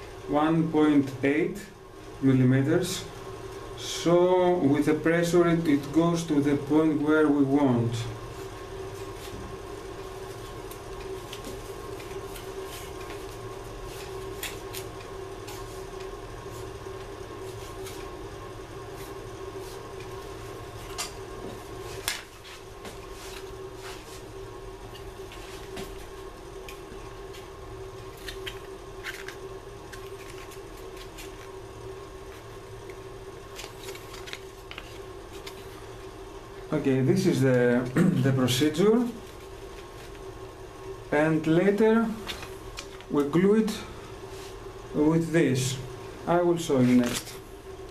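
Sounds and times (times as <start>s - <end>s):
steady hum with held tone: 0.0s - 47.9s.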